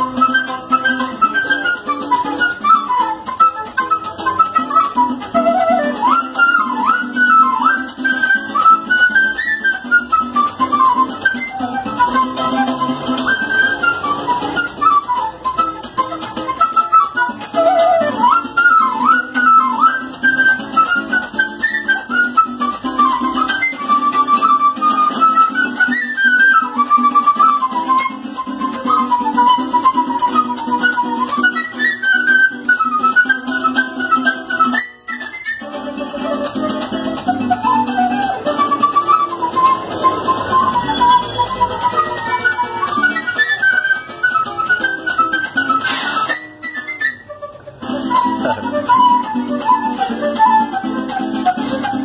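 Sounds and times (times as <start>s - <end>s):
flute playing lively melody: 0.0s - 52.0s
small string instrument strummed: 0.0s - 52.0s
strummed guitar chords: 32.9s - 52.0s.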